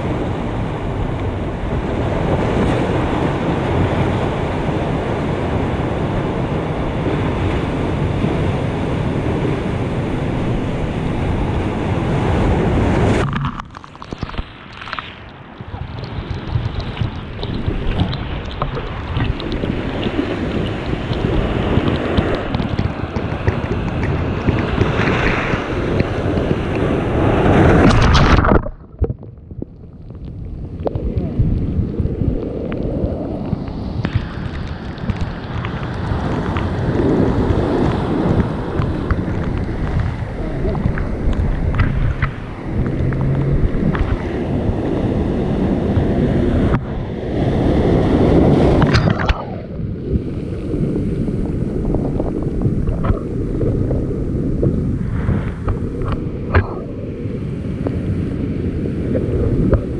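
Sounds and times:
wind buffeting microphone: 0.0 - 13.4, 15.3 - 59.9
ocean waves breaking on rocks: 0.0 - 29.1, 30.6 - 59.9
seawater rushing and foaming: 0.0 - 29.1, 30.0 - 59.9.

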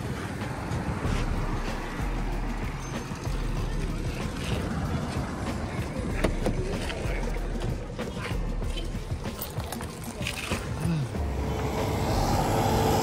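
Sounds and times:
road traffic: 0.0 - 13.0.

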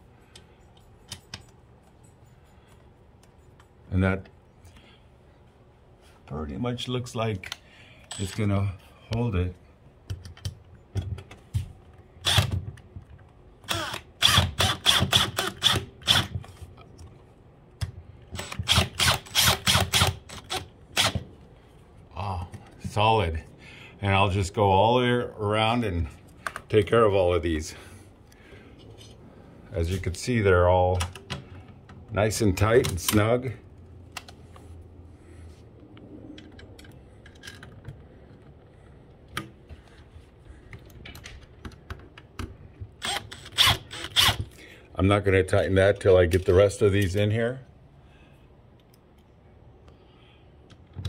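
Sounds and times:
cordless drill driving screw: 13.7 - 16.3, 18.4 - 21.2, 43.0 - 44.5.

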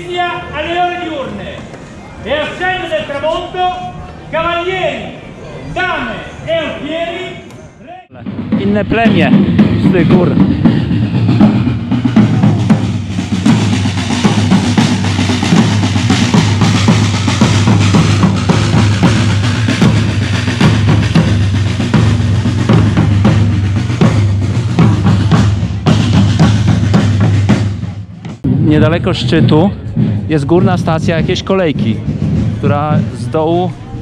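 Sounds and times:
marching drums beating: 8.1 - 34.0.

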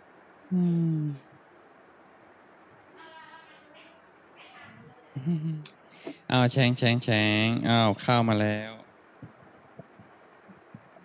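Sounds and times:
faint dull thuds: 9.2 - 11.0.

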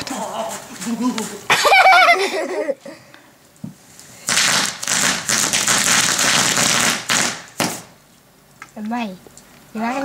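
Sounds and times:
firework crackling: 3.8 - 8.0.

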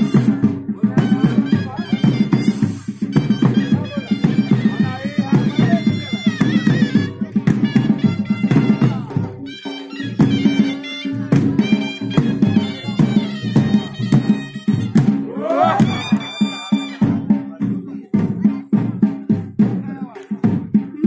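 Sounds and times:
drum beats: 0.0 - 21.0
shrill wind instruments: 14.0 - 17.2.

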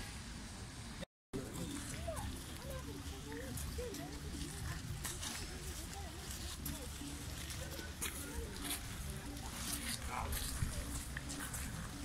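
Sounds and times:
people talking: 1.4 - 12.0.

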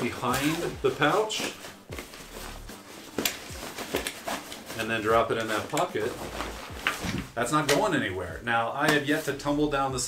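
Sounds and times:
nylon fabric rustling and scraping: 0.0 - 10.0.

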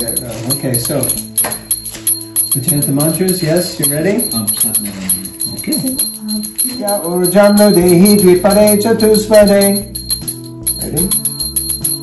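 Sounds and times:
background music with jingling bells: 0.0 - 12.0.

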